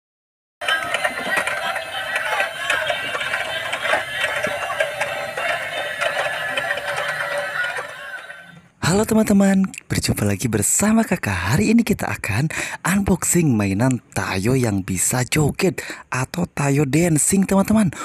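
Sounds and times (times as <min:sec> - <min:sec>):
toy drive gears clicking: 0:00.6 - 0:08.6
tinny electronic toy tunes: 0:00.6 - 0:08.7.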